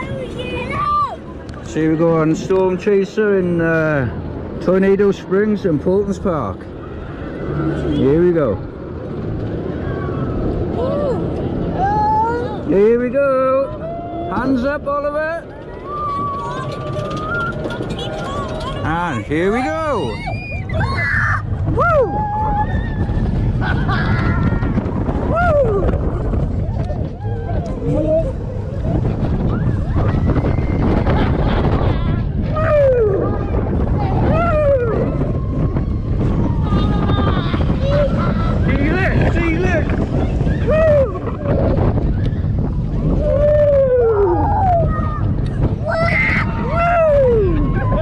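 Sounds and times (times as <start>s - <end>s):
roller coaster rumble: 0.0s - 48.0s
wind buffeting microphone: 0.0s - 48.0s
riders whooping: 13.6s - 14.6s, 15.4s - 48.0s.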